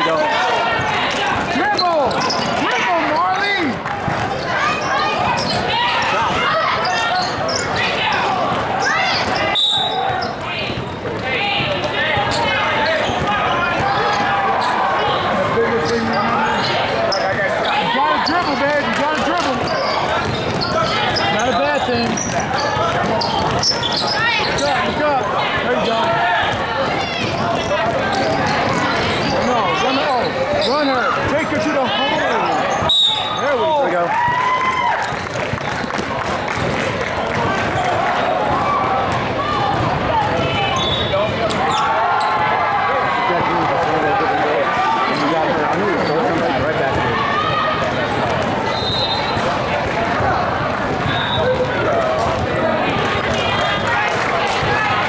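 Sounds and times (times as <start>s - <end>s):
basketball bouncing on hard court: 22.0s - 24.0s.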